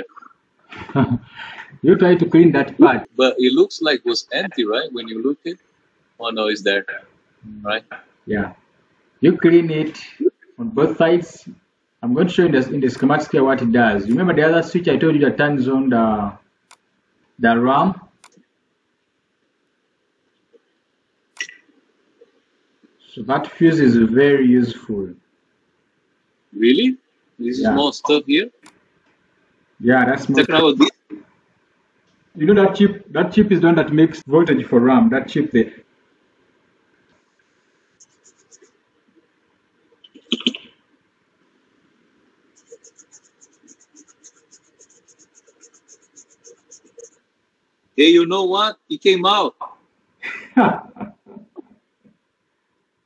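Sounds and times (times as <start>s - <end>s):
faint ticks: 16.6s - 17.0s
small brush scrubbing circuit board: 38.0s - 38.7s, 42.5s - 47.2s.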